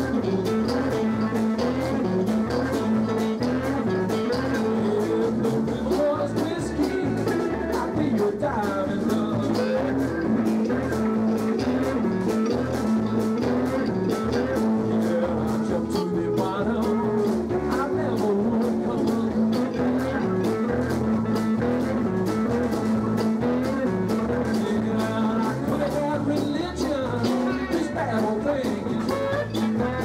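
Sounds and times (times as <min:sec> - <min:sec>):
drum kit steady beat: 0:00.0 - 0:30.0
electric guitars: 0:00.0 - 0:30.0
keyboard: 0:00.0 - 0:30.0.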